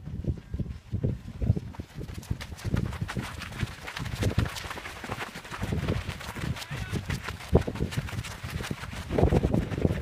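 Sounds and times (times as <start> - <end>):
running footsteps on gravel: 0.0 - 10.0.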